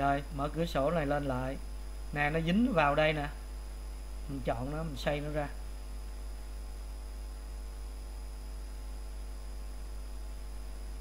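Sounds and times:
faint hiss: 0.0 - 11.0
low electrical hum: 0.0 - 11.0
thin high whine: 0.0 - 11.0.

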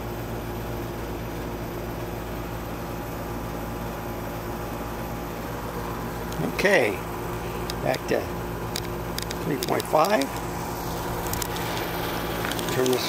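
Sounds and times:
steady mechanical hum: 0.0 - 13.0.

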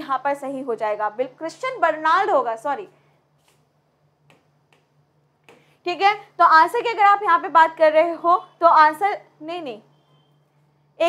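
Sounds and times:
woman speaking: 0.0 - 3.0, 5.8 - 9.9
faint taps on touch screen: 4.2 - 5.7.

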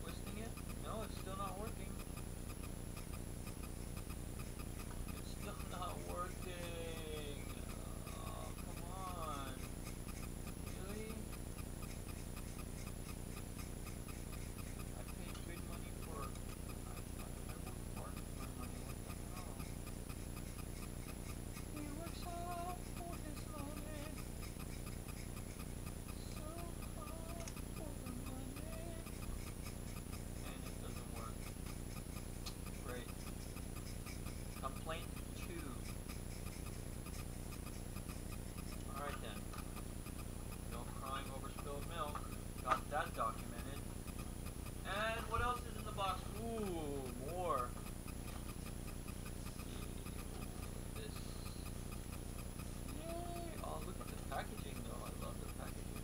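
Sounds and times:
clockwork toy ticking: 0.0 - 56.0.

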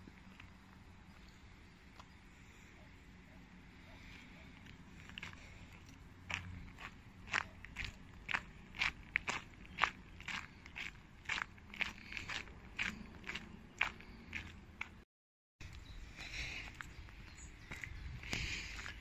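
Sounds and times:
footsteps crunching on gravel: 4.6 - 15.0, 16.6 - 19.0.

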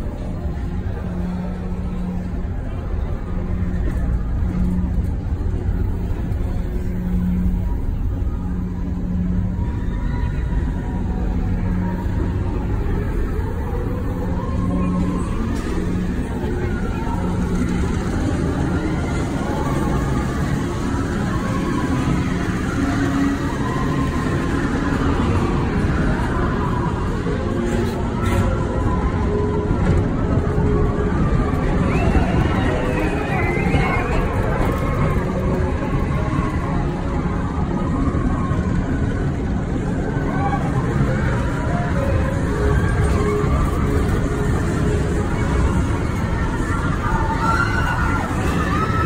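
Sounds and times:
ride car rumbling on track: 0.0 - 49.0.

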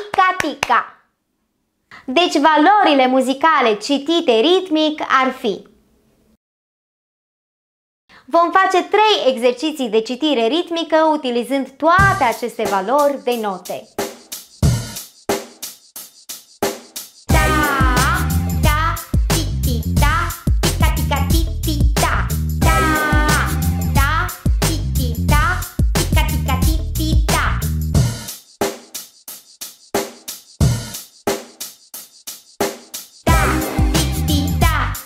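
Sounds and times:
drum kit playing an even beat: 12.0 - 35.0
kick drum hit: 33.3 - 34.0.

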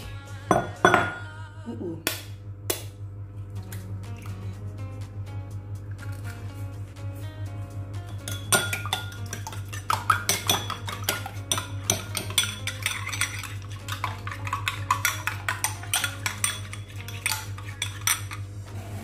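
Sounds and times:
spoon clinking against ceramic bowl: 0.5 - 1.2, 8.1 - 18.4.

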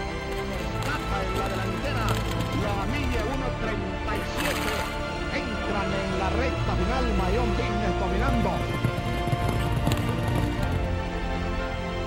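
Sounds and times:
horse hooves clip-clopping: 0.0 - 5.1, 7.1 - 11.8
music: 0.0 - 12.0.

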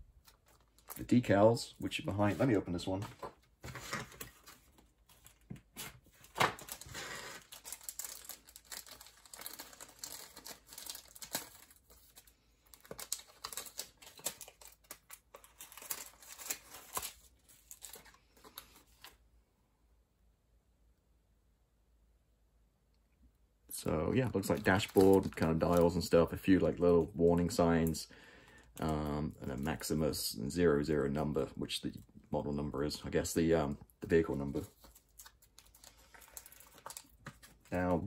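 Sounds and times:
plastic packet rustling and crackling: 0.1 - 19.2, 23.8 - 29.9, 34.0 - 38.0.

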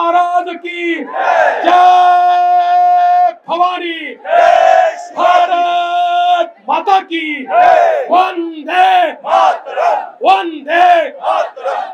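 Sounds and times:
man shouting over loudspeaker: 0.0 - 4.2, 5.0 - 9.2, 10.2 - 11.2
crowd shouting: 1.0 - 3.4, 4.2 - 5.9, 7.4 - 11.9.

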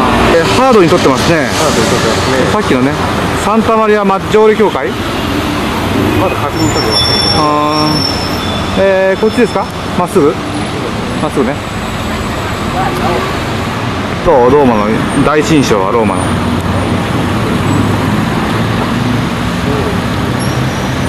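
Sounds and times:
cars passing: 0.0 - 21.0
voices in the street: 0.0 - 21.0.

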